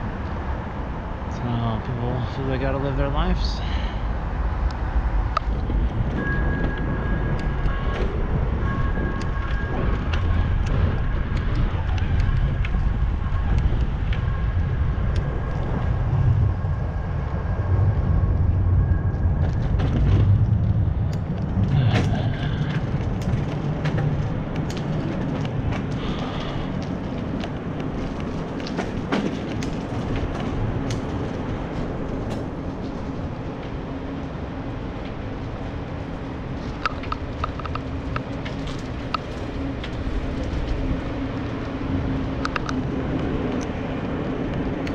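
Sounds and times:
rumble from riding over pavement: 0.0s - 44.9s
wind rushing over microphone: 0.0s - 44.9s.

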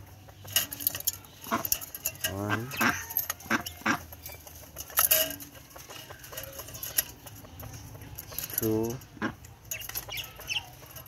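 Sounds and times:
quail calls: 2.4s - 4.4s.

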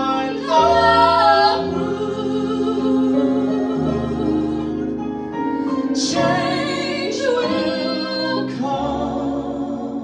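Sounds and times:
woman and man singing a duet: 0.0s - 4.9s, 5.8s - 10.0s.

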